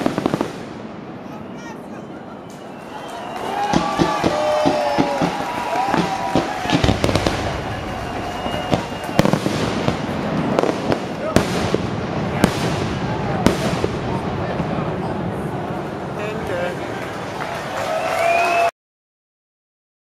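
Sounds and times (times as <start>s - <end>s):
fireworks shells bursting with bangs: 0.0s - 1.2s, 3.6s - 15.5s
fireworks crackle: 0.0s - 18.6s
onlookers' voices: 1.1s - 18.3s.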